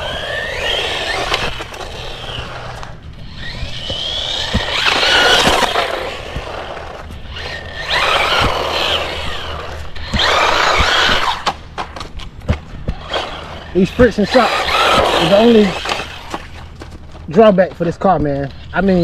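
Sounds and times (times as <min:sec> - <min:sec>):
rc car motor whine: 0:00.0 - 0:11.5, 0:12.9 - 0:16.6
tyres rumbling on asphalt: 0:00.0 - 0:19.0.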